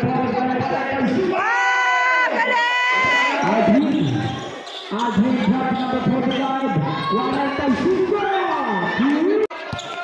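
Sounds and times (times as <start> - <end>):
crowd noise: 0.0 - 10.0
crowd long high shouts: 1.3 - 4.4.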